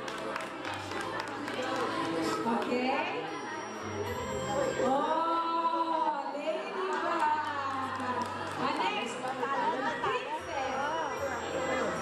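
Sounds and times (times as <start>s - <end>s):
several voices talking: 0.0s - 12.0s.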